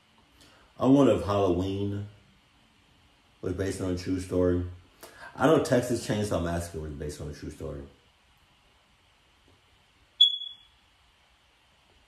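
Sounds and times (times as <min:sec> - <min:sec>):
smoke alarm chirp: 0:10.2 - 0:10.8.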